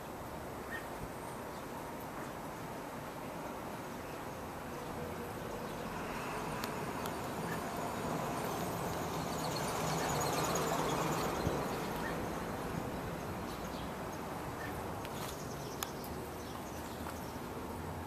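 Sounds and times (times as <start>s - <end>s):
distant traffic rumble: 0.0s - 18.0s.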